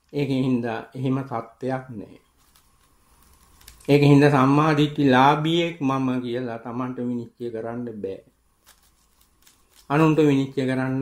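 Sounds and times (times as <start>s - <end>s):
man preaching: 9.9s - 11.0s.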